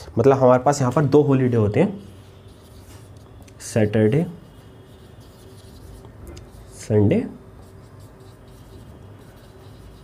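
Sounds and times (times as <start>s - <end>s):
marker scratching on whiteboard: 1.0s - 10.0s
man talking: 3.6s - 4.4s, 6.8s - 7.4s.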